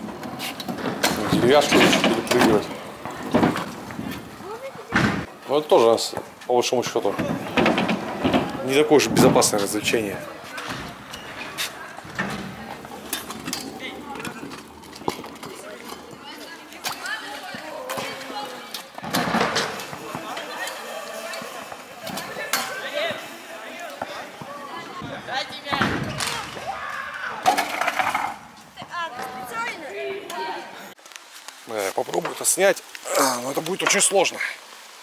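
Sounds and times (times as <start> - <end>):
scooter wheels rolling: 0.0 - 30.5
children calling out: 26.1 - 27.6.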